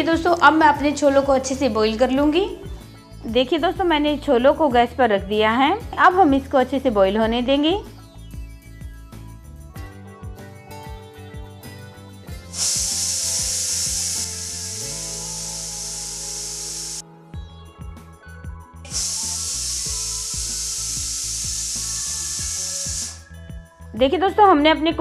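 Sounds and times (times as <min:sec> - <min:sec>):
pressure cooker whistle hissing: 0:12.5 - 0:17.0, 0:18.9 - 0:23.5.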